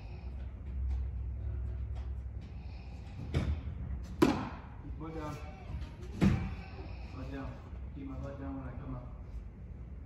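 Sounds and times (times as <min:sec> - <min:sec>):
baseball smacking into mitt: 0:04.2 - 0:04.7.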